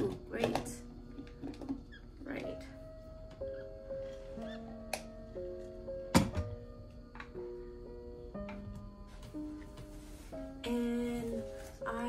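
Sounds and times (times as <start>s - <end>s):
gentle plucked music: 0.0s - 12.0s.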